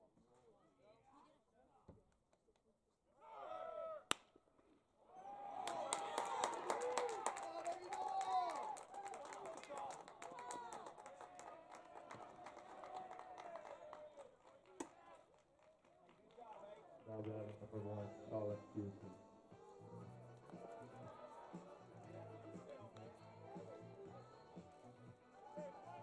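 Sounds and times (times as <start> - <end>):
people clapping: 5.6 - 18.6, 20.2 - 26.0.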